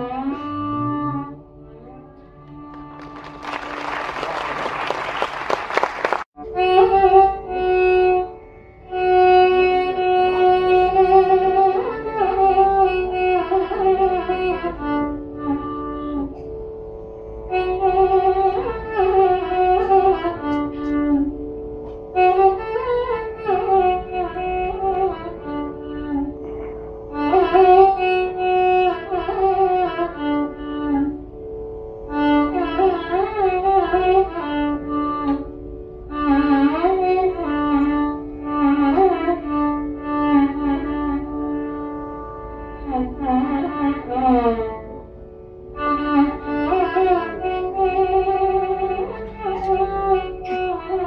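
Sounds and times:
ornamented gliding melody: 0.0 - 5.6, 6.3 - 51.0
tambura drone: 0.0 - 51.0.

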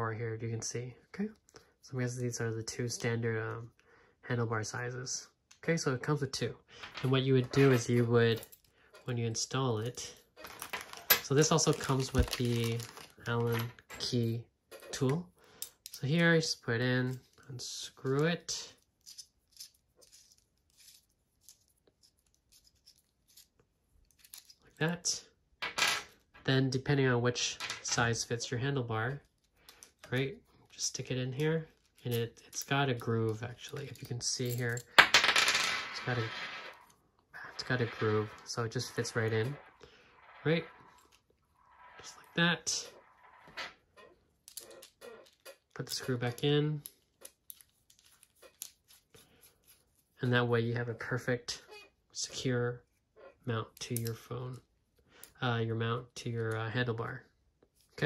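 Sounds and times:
metal bolt clattering on table: 10.3 - 16.0
screw metallic scrapes: 36.0 - 46.4
small metal clicks and rattles: 44.0 - 48.8.

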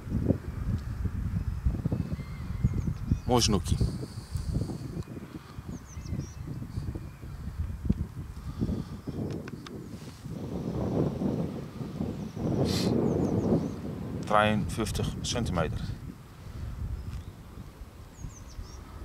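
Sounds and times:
faint bird chirps: 1.4 - 3.6, 5.5 - 7.6, 16.9 - 19.0
rustling noise: 9.2 - 10.6.

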